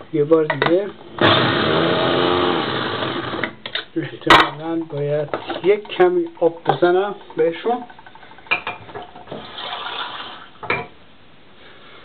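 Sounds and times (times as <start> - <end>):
electric chopper motor chopping: 1.2 - 3.5.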